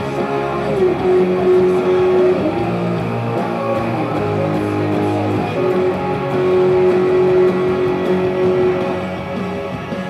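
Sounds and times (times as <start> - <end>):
distorted electric guitar note: 0.0 - 10.0.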